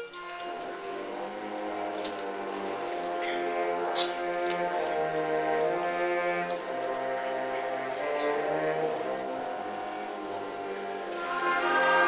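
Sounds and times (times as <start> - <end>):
concert band playing held chords: 0.0 - 12.0.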